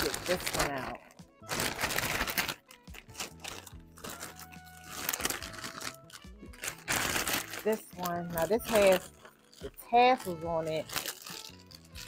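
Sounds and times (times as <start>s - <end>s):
background music: 0.0s - 12.0s
plastic bag crinkling: 0.0s - 12.0s.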